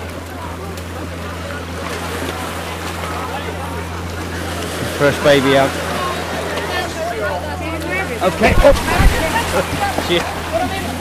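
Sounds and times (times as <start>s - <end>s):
outboard motor idling: 0.0s - 11.0s
people talking: 0.0s - 11.0s.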